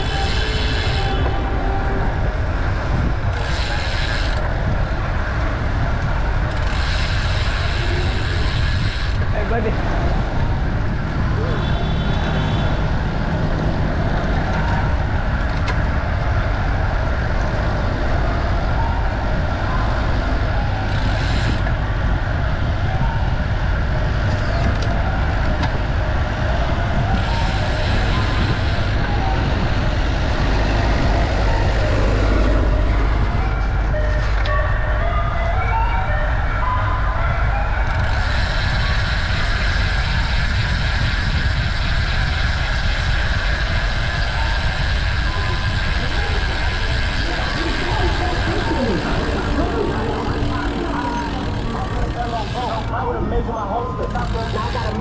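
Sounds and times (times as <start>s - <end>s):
street and traffic noise: 0.0s - 55.0s
wind rumble on microphone: 0.0s - 55.0s.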